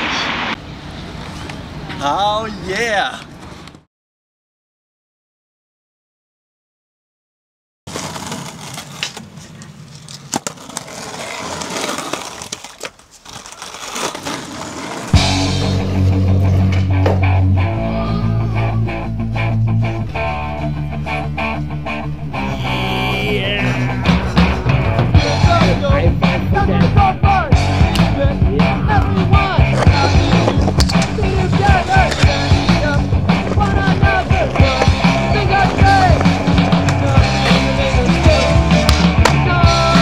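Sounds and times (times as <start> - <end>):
skateboard wheels rolling on pavement: 0.0 - 3.9, 7.9 - 17.8, 18.5 - 40.0
rock music with bass and guitar: 15.1 - 40.0
skateboard clacks: 28.9 - 40.0.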